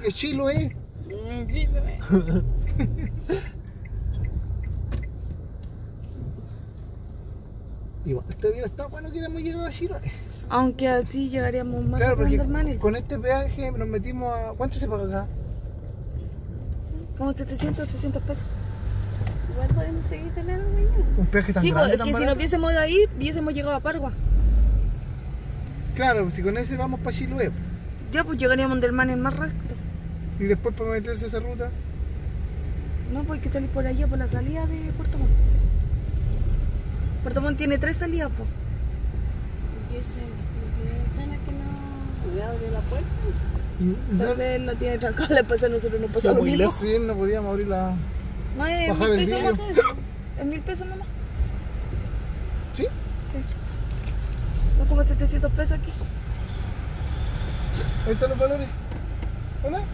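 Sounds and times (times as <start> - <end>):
car engine idling: 0.0 - 24.3
car engine and tyres rumbling: 0.0 - 59.9.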